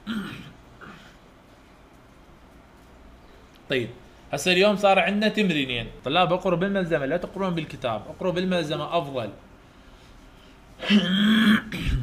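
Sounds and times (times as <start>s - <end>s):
man clearing his throat: 0.0s - 1.2s, 10.8s - 12.0s.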